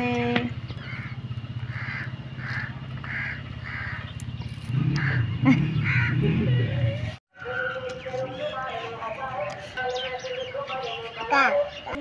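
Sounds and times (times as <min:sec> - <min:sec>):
crow cawing: 0:00.8 - 0:04.2, 0:04.8 - 0:06.2.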